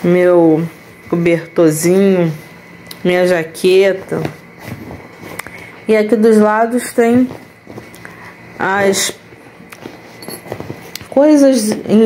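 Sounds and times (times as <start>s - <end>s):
fabric bag rustling: 3.9s - 5.4s, 7.0s - 8.4s, 9.4s - 11.2s.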